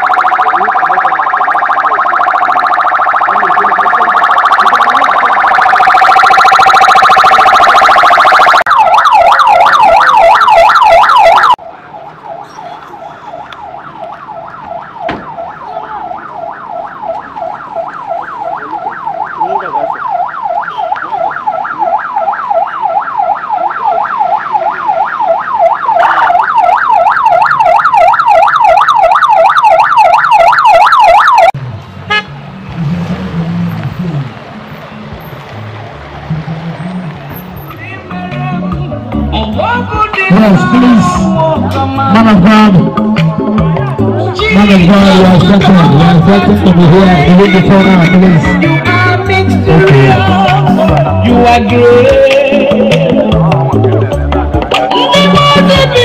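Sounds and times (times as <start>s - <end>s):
electronic siren: 0.0s - 11.6s, 13.2s - 31.6s, 44.6s - 49.9s.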